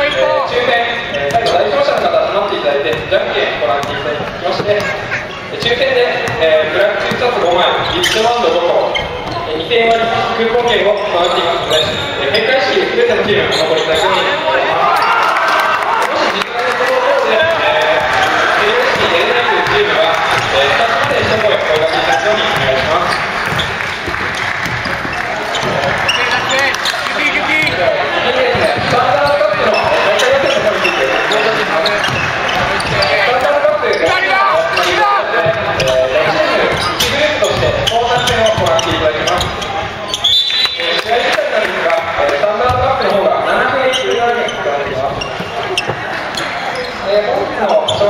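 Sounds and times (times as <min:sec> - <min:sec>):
sneaker squeaks: 0:00.0 - 0:15.3, 0:17.3 - 0:41.7, 0:42.3 - 0:48.0
echoing voices: 0:00.0 - 0:48.0
players calling out: 0:00.0 - 0:48.0
basketball bouncing on wooden floor: 0:03.8 - 0:05.0, 0:05.6 - 0:08.2, 0:18.8 - 0:27.8, 0:28.4 - 0:30.7, 0:36.6 - 0:39.7.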